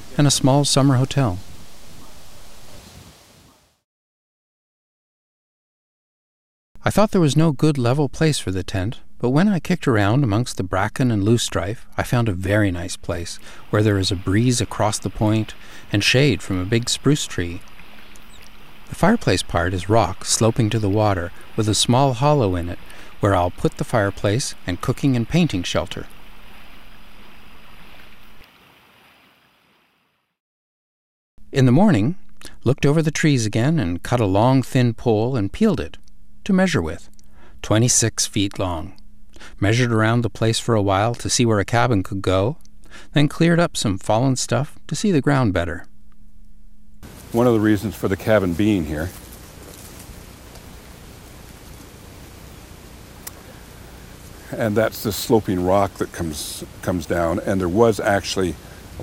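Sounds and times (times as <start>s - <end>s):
light wind: 0.0s - 3.7s, 11.8s - 29.2s, 47.0s - 59.0s
outdoor background hiss: 0.0s - 3.8s, 6.8s - 30.4s, 31.4s - 59.0s
lake water lapping: 13.1s - 29.3s, 47.0s - 59.0s.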